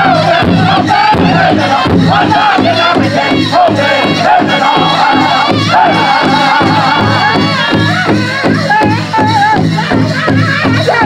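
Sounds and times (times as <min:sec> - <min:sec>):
big drum beat: 0:00.0 - 0:11.0
men singing loudly together: 0:00.0 - 0:11.0.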